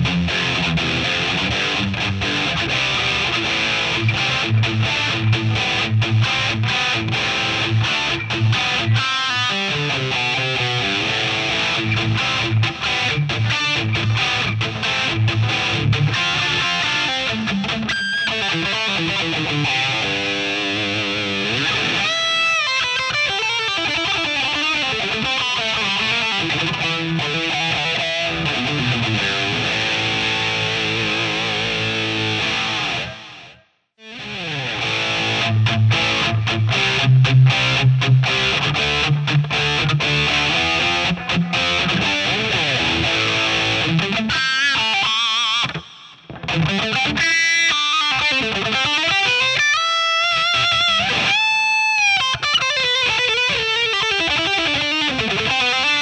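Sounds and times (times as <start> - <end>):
distorted electric guitar: 0.0 - 56.0.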